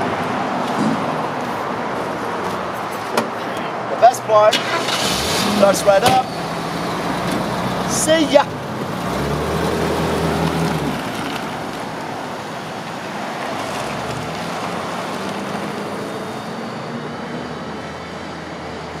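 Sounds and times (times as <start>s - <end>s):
road traffic noise: 0.0s - 19.0s
car engine pulling away: 4.5s - 12.8s, 13.4s - 19.0s.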